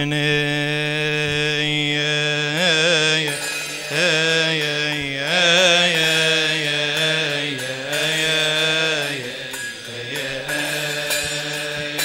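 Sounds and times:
men's choir chanting a hymn: 0.0s - 12.0s.

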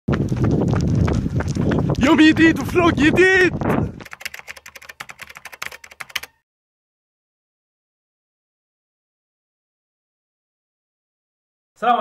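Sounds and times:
wind rumble: 0.1s - 4.1s
running footsteps on pavement: 0.1s - 5.5s.

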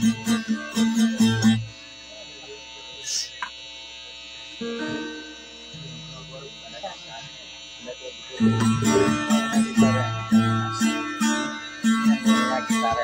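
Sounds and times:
sound system electrical buzz: 0.0s - 13.0s
faint low tones: 0.8s - 13.0s.

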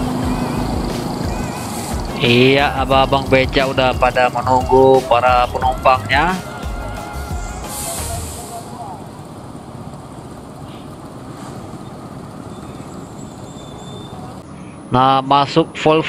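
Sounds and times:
bus engine rumble: 0.0s - 15.8s
ambient noise: 0.0s - 16.0s
short hiss: 7.6s - 8.8s.

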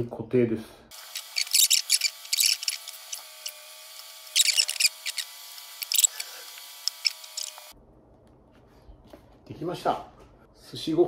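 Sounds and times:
squeeze bottle squeaking: 1.0s - 7.7s.

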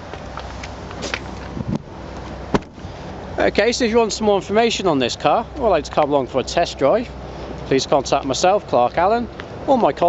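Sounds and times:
car tailgate slamming shut: 2.5s - 2.8s.

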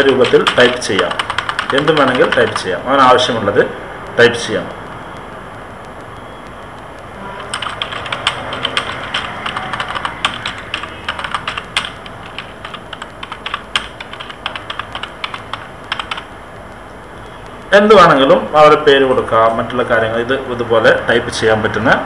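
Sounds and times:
typing on computer keyboard: 0.0s - 2.9s, 7.4s - 16.8s.

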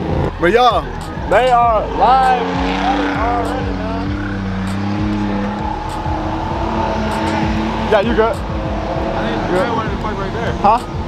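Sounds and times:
car engines running: 0.0s - 11.0s.

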